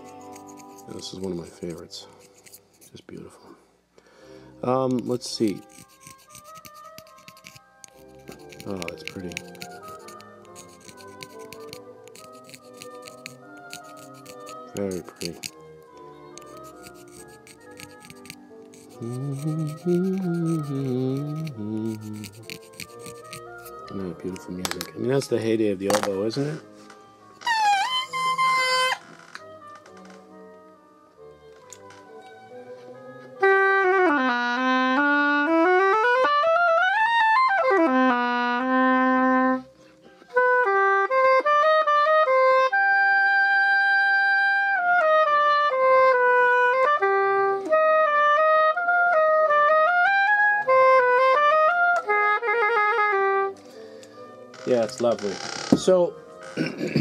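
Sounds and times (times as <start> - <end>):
oboe melody: 0.0 - 2.2, 5.0 - 25.5, 26.8 - 55.4.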